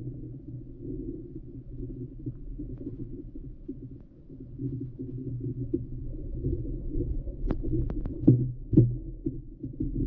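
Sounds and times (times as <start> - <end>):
underwater rumble of moving water: 0.0 - 10.0.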